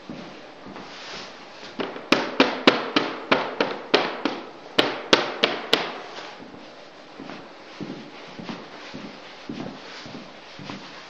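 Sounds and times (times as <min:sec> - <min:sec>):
sharp cracks echoing in room: 0:01.6 - 0:06.6.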